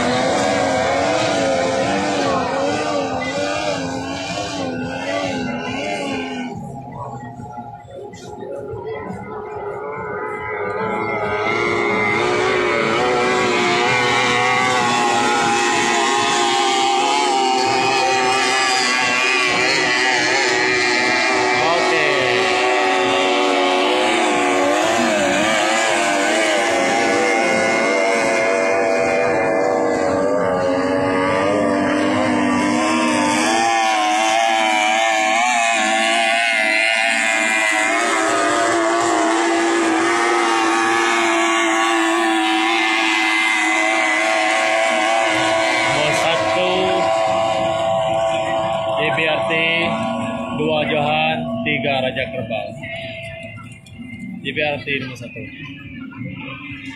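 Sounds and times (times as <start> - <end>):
outboard motors whining: 0.0 - 56.9.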